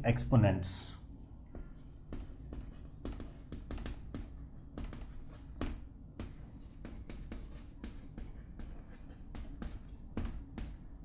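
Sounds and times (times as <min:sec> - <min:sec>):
chalk tapping and scratching on chalkboard: 0:01.2 - 0:11.0.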